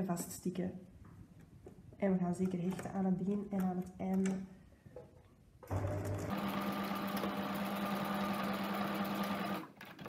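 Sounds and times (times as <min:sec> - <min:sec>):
sewing machine stitching: 0:05.7 - 0:10.0.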